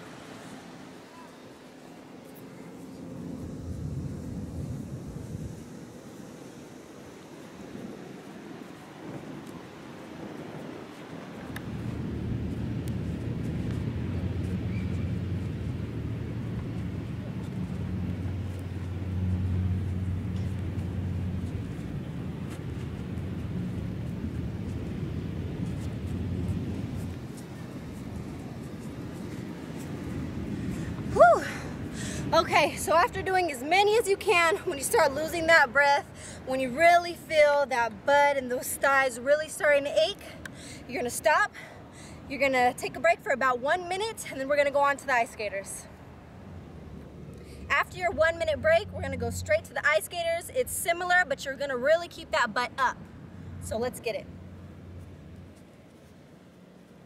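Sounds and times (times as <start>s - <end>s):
low engine drone: 0.0s - 9.3s, 11.5s - 32.4s.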